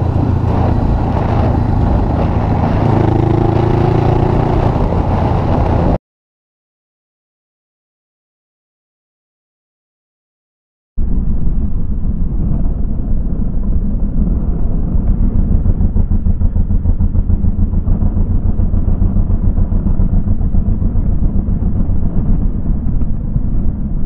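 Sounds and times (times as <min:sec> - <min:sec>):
motorcycle engine rumble: 0:00.0 - 0:06.0, 0:11.0 - 0:24.0
wind buffeting microphone: 0:00.0 - 0:06.0, 0:11.0 - 0:24.0.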